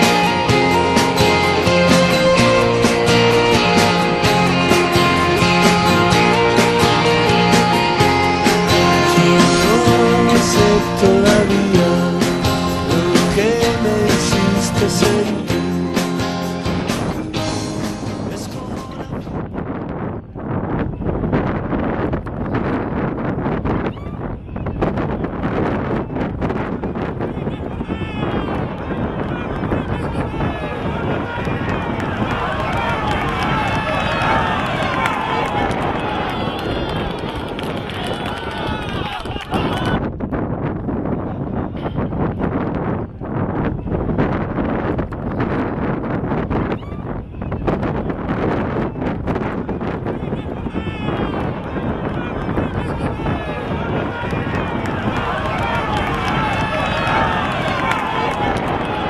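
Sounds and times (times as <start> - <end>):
wind buffeting microphone: 18.4 - 59.0.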